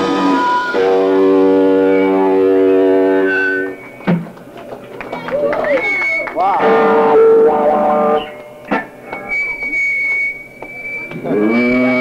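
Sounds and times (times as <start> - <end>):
electric guitar droning note: 0.0 - 4.1, 6.4 - 12.0.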